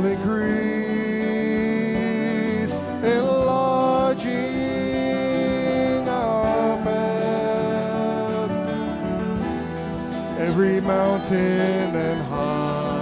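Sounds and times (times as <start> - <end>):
acoustic guitar strumming: 0.0 - 13.0
worship band playing slow song: 0.0 - 13.0.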